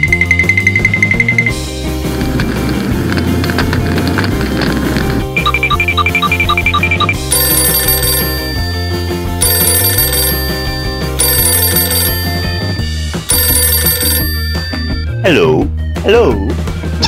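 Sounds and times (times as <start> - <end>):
telephone ringing: 0.0 - 1.7, 5.4 - 15.2
background music: 0.0 - 17.0.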